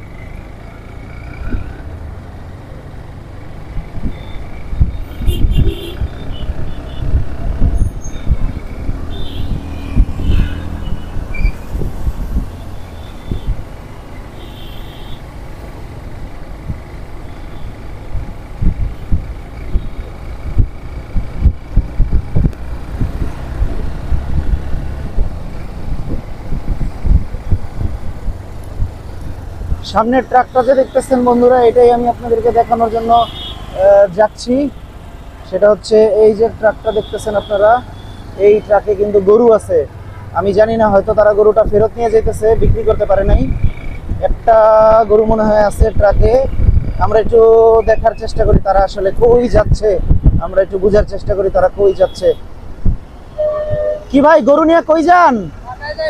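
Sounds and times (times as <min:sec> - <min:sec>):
vehicle engine and tyre noise: 0:00.0 - 0:56.0
wind rumbling on microphone: 0:03.7 - 0:14.0, 0:18.1 - 0:30.2, 0:40.8 - 0:51.8, 0:52.6 - 0:54.2.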